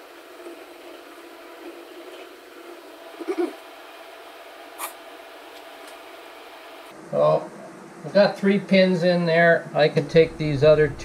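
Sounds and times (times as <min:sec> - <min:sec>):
low workshop hum: 0:00.0 - 0:11.0.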